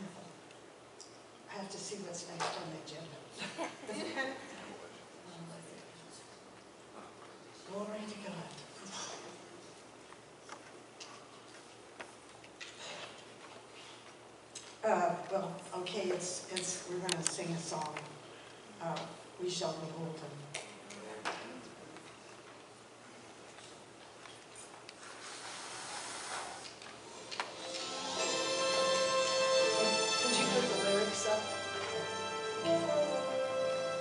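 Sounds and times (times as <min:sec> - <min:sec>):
room hiss: 0:00.0 - 0:34.0.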